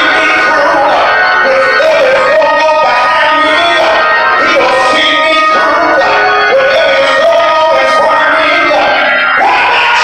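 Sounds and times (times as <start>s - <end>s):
electric organ chords: 0.0s - 10.0s
gospel singing: 0.0s - 10.0s.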